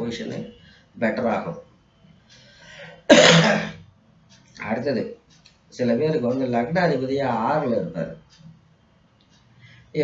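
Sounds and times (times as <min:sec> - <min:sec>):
man speaking: 0:00.0 - 0:01.7, 0:04.6 - 0:08.4
man clearing his throat: 0:03.1 - 0:03.8.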